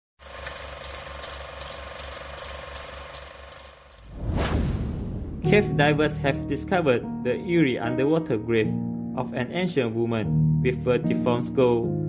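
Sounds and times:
mechanical ticking: 0.2 - 4.1.

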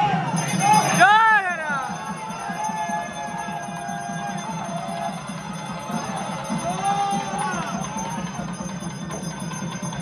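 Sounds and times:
bells ringing: 0.0 - 10.0
crowd noise: 0.0 - 10.0.

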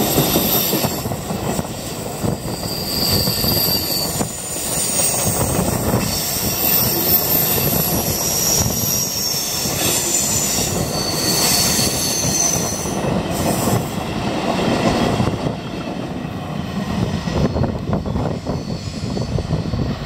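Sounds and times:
train wheels rumbling on rails: 0.0 - 20.0
high-pitched wheel squeal: 2.2 - 13.8, 17.3 - 19.9.

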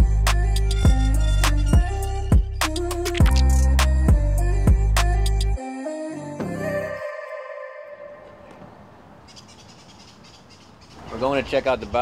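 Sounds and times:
music track: 0.0 - 8.2
faint outdoor ambience: 5.6 - 12.0
birds chirping: 8.2 - 12.0.

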